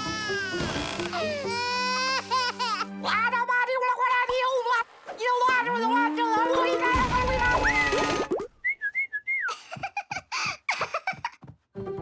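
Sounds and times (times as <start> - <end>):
background music: 0.0 - 8.4, 11.7 - 12.0.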